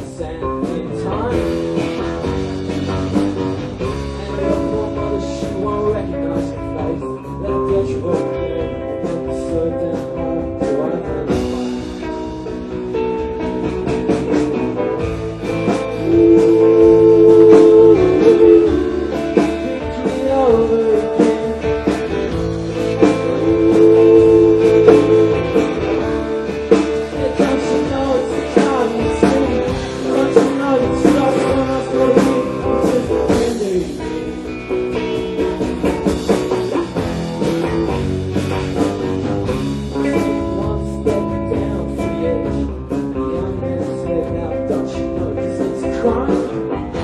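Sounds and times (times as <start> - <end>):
rock band playing: 0.0 - 47.0.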